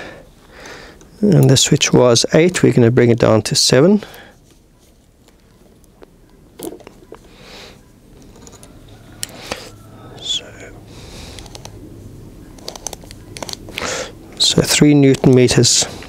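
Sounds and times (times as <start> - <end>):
soft breath or whisper: 7.2 - 7.9.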